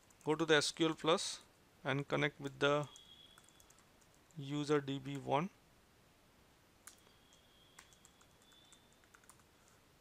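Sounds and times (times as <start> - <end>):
faint keyboard keystrokes: 6.8 - 9.8.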